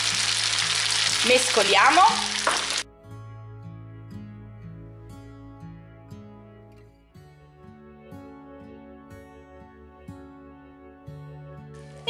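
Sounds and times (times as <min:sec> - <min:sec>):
spaghetti sizzling in frying pan: 0:00.0 - 0:02.9
soft background music: 0:00.1 - 0:12.0.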